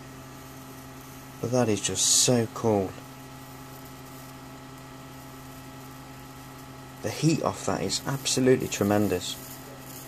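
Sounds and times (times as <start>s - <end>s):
electrical hum with hiss: 0.0s - 10.0s.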